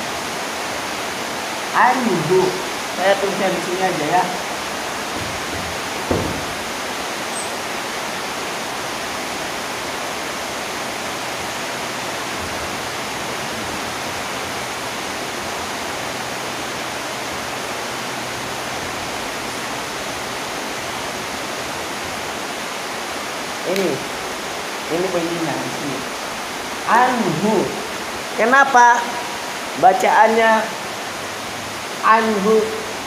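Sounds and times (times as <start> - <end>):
steady background hiss: 0.0 - 33.0
brief knock: 6.1 - 6.6.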